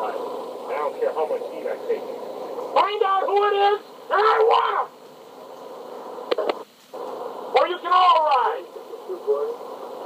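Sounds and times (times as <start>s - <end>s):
faint hum: 0.0s - 10.0s
tape hiss: 0.0s - 10.0s.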